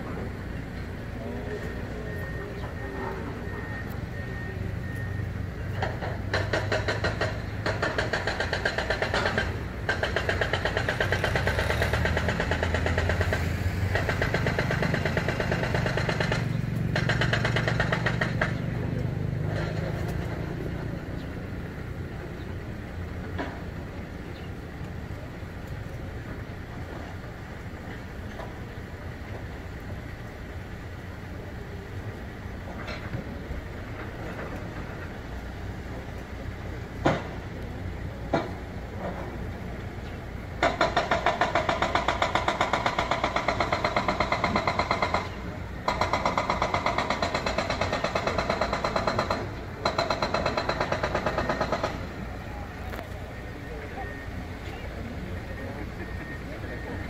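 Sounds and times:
vehicle engine humming: 0.0s - 57.0s.

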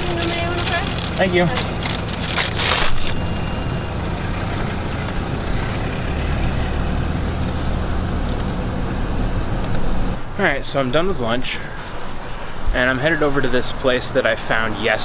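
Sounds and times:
paper bag rustling: 0.0s - 3.2s
car engine idling: 0.0s - 10.0s.

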